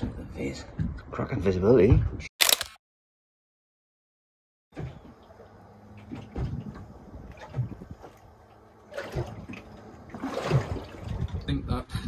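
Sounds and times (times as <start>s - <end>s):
waves lapping against boat hull: 4.8s - 11.6s.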